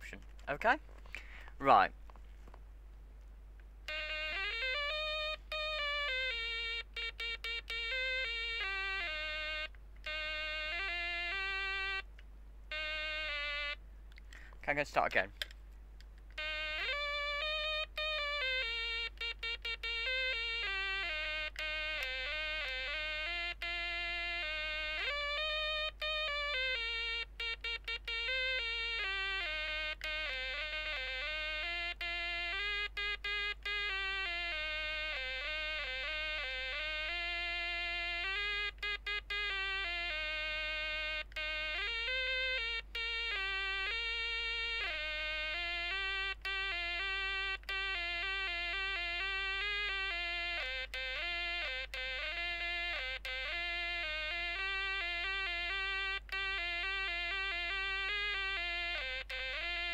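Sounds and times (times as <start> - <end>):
pocket synthesiser melody: 3.8 - 14.5, 16.3 - 59.9.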